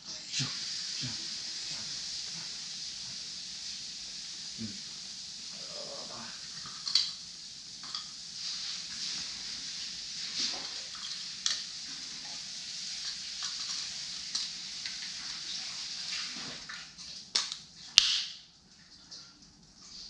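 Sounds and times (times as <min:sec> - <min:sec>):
steady hiss: 0:00.0 - 0:18.7.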